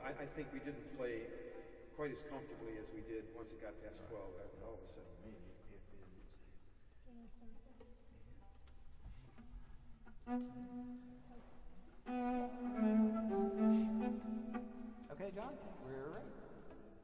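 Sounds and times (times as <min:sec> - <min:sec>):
bowed strings holding a chord: 0:12.0 - 0:16.9.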